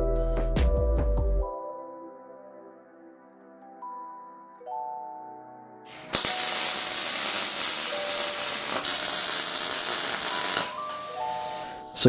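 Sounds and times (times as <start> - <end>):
background music: 0.0 - 12.0
welding arc crackling: 5.9 - 10.8.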